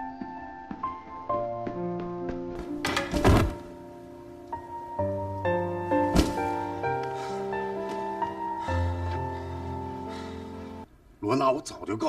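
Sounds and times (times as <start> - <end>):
background music with held notes: 0.0 - 10.9
body thudding on crash mat: 6.1 - 6.6.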